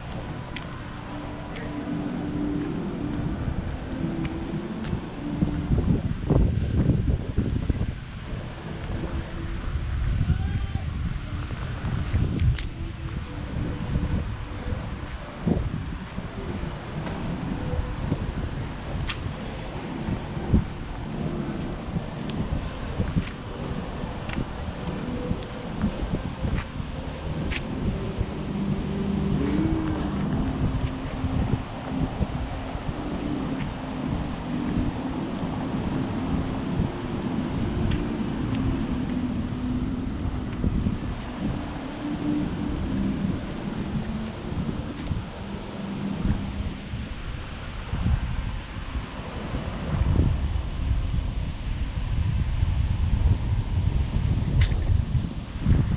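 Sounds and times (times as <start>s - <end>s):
leaves rustling: 0.0s - 55.9s
low steady hum: 0.0s - 55.9s
wind buffeting microphone: 0.0s - 55.9s.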